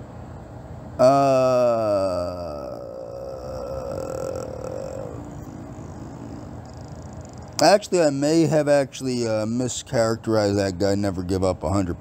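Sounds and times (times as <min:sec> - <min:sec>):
faint low hum: 0:00.0 - 0:12.0
man saying uhh: 0:01.0 - 0:08.1.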